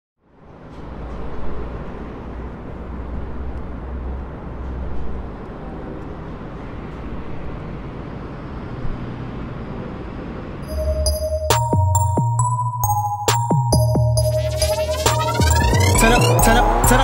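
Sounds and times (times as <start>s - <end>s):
low traffic rumble: 0.2s - 11.3s.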